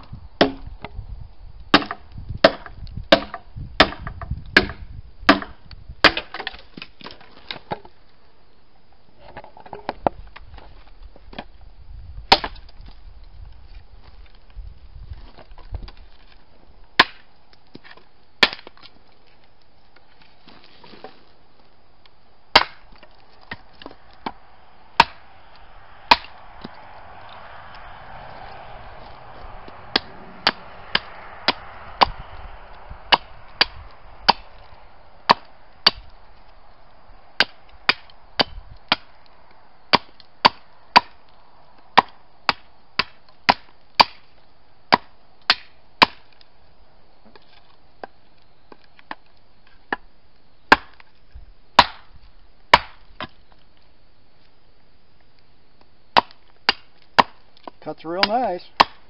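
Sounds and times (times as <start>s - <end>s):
tomahawk chopping branch on wood: 0.4s - 0.9s, 1.7s - 7.9s, 12.3s - 12.8s, 17.0s - 19.0s, 22.5s - 24.4s, 25.0s - 25.3s, 26.1s - 26.8s, 29.8s - 32.2s, 33.1s - 36.1s, 37.4s - 39.1s, 39.9s - 41.2s, 42.0s - 44.3s, 44.9s - 46.4s, 50.7s - 51.1s, 51.8s - 52.1s, 52.7s - 53.4s, 56.1s - 59.0s.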